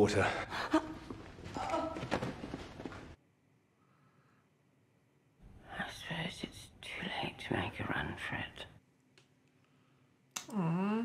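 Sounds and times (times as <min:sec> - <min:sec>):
person whispering: 0:05.6 - 0:08.8.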